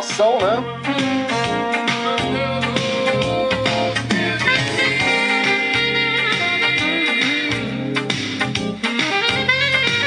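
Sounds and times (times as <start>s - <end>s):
instrumental music with steady beat: 0.0s - 10.0s.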